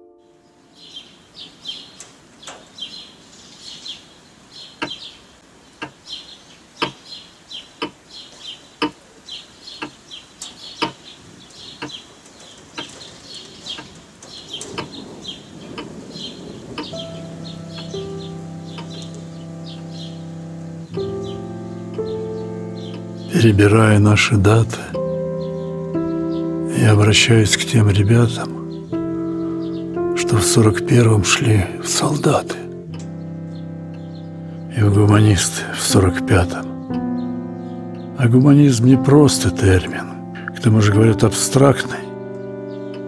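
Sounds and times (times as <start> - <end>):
sustained music chords: 0.0 - 1.1, 15.8 - 43.0
birds chirping: 0.0 - 43.0
sharp ticks: 5.8 - 6.0, 6.8 - 7.0, 7.8 - 8.0, 8.8 - 9.0, 9.8 - 11.0, 13.7 - 15.0, 15.7 - 15.9, 16.8 - 17.1.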